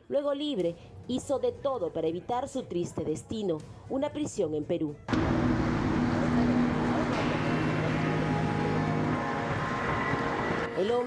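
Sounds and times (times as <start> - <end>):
vehicle engine humming: 5.1 - 10.9
street noise: 5.1 - 11.0.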